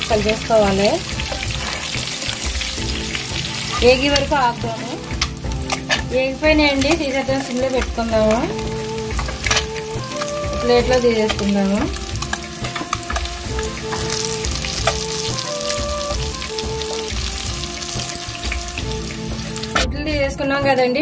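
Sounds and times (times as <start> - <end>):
metal spoon stirring: 0.0 - 15.7
eggs sizzling in hot oil: 0.0 - 19.9.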